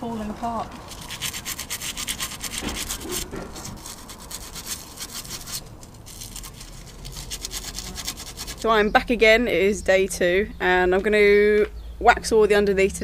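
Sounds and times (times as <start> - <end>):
sandpaper scraping metal: 0.9 - 8.7.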